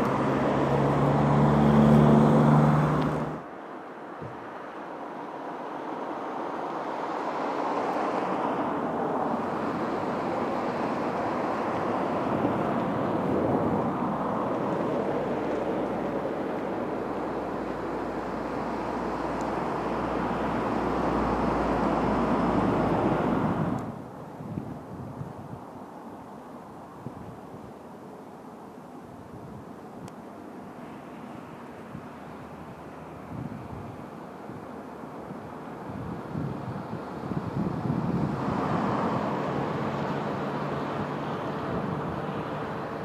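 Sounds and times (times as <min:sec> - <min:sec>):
wind on microphone: 0:09.2 - 0:25.9, 0:26.9 - 0:27.8, 0:29.1 - 0:30.1, 0:33.2 - 0:34.7, 0:35.3 - 0:43.0.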